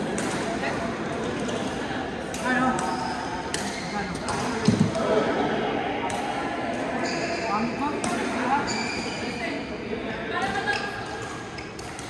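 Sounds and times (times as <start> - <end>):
racket hitting shuttlecock: 0.0 - 0.5
voices echoing: 0.0 - 12.0.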